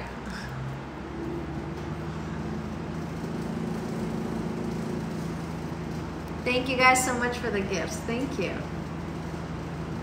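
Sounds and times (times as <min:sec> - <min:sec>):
low motor hum: 0:00.0 - 0:10.0.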